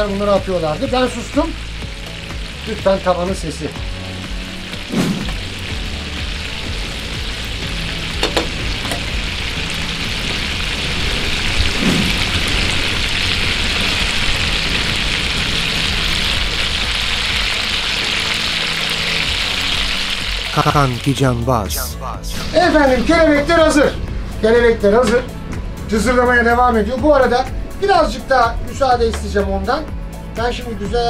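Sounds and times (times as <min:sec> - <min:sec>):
chicken sizzling in hot oil: 0:00.0 - 0:21.0.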